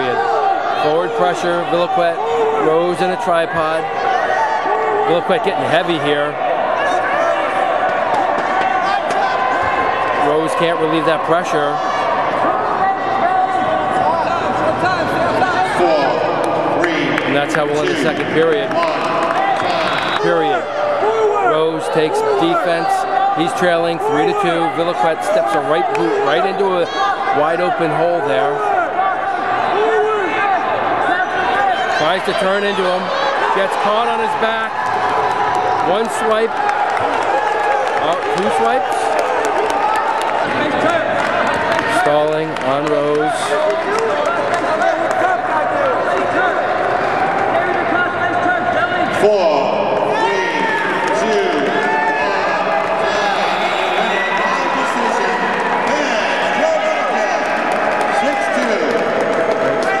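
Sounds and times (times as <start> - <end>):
crowd shouting in a gym: 0.0 - 60.0
people calling out and talking: 0.0 - 60.0.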